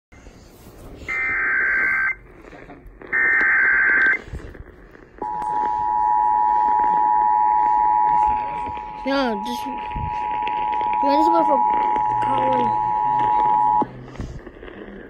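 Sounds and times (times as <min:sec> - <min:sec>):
two-tone attention signal: 0:05.2 - 0:13.9
warbling data bursts: 0:05.2 - 0:13.9.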